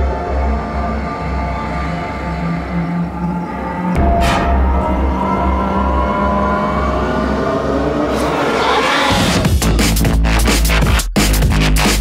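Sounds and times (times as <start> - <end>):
gritty synth tones: 0.0 - 10.8
pulsing deep bass: 2.7 - 8.2.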